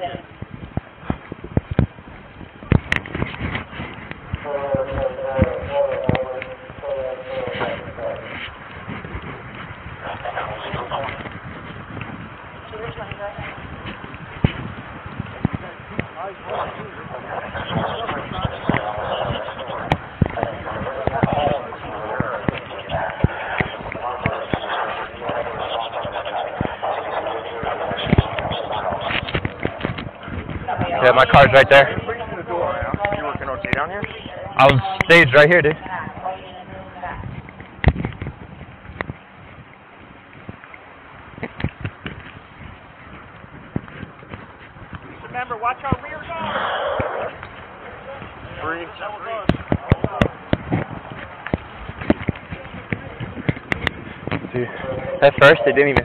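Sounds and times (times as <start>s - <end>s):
camera knocking and rustling: 2.7s - 4.4s, 37.4s - 39.2s, 41.4s - 42.5s, 49.4s - 54.5s
muffled voices: 2.7s - 11.8s, 12.6s - 14.6s, 15.3s - 37.6s, 45.0s - 56.0s.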